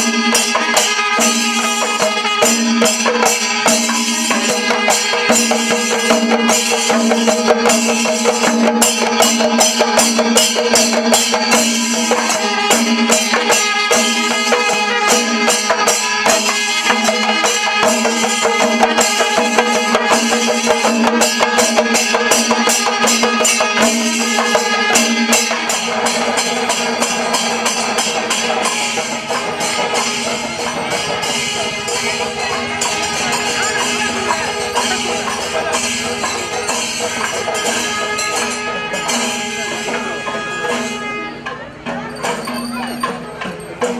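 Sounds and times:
hand drums struck with palms: 0:00.0 - 0:43.9
jangling brass hand cymbals: 0:00.0 - 0:43.9.

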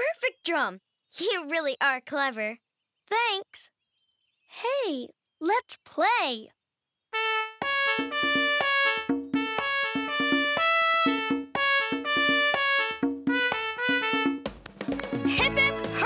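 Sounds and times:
trumpet playing bouncy tune: 0:07.2 - 0:14.5
steady drum beat: 0:07.6 - 0:16.0.

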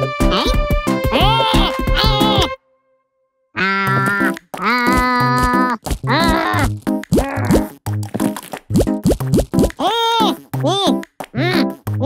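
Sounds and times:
background music: 0:00.0 - 0:03.0, 0:03.6 - 0:12.0.

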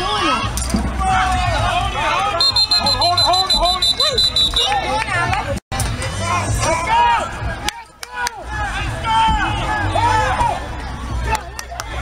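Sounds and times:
people shouting: 0:01.0 - 0:04.9, 0:08.1 - 0:11.4.

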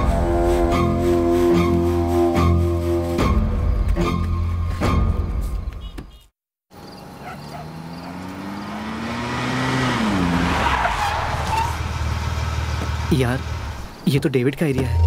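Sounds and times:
car engines pulling in: 0:06.7 - 0:14.1
tyres skidding on dirt: 0:06.7 - 0:14.2
man's voice: 0:13.1 - 0:15.0.

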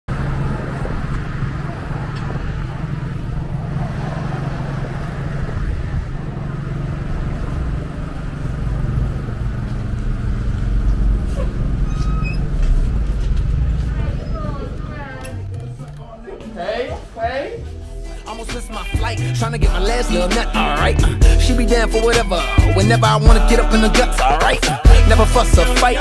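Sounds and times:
road traffic rumble: 0:00.1 - 0:26.0.

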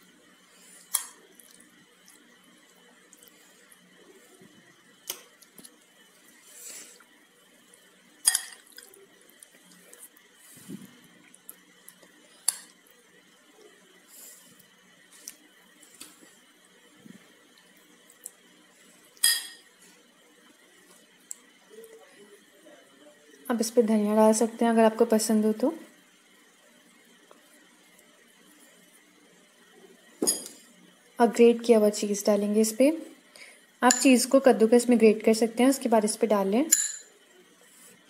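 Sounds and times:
metal spoon clinking on glass plate: 0:19.2 - 0:19.6, 0:33.9 - 0:34.1, 0:36.7 - 0:37.1.

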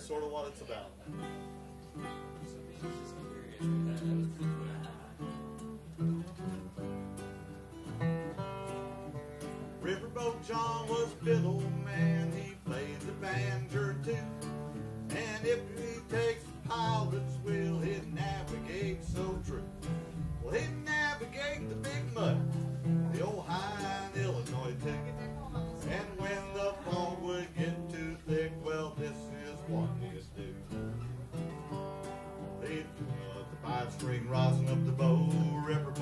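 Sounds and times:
acoustic guitar strumming: 0:00.0 - 0:36.0
string instrument picking melody: 0:01.1 - 0:36.0.

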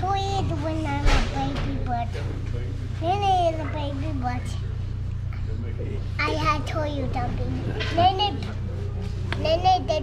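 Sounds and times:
young child making wordless sounds: 0:00.0 - 0:02.2, 0:03.0 - 0:04.6, 0:09.4 - 0:10.0
steady low hum: 0:00.0 - 0:10.0.

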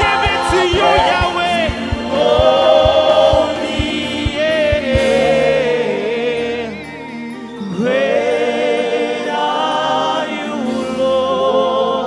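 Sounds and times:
steady low beat: 0:00.0 - 0:05.6
group singing in harmony: 0:00.0 - 0:12.0.

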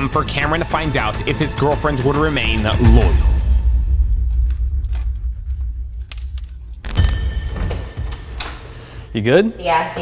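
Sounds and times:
deep bass rumble: 0:02.5 - 0:07.2
sharp hit: 0:02.8 - 0:08.1.

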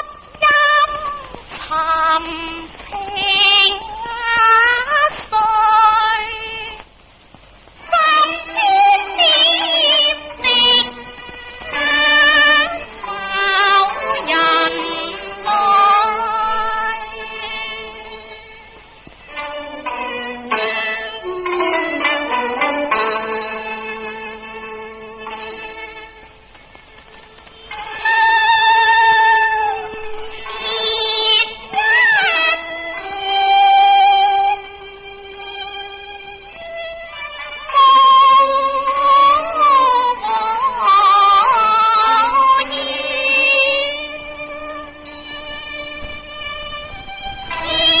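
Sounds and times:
opera-style singing: 0:00.0 - 0:07.0, 0:07.6 - 0:26.3, 0:27.6 - 0:48.0
low instrumental accompaniment: 0:07.6 - 0:48.0.

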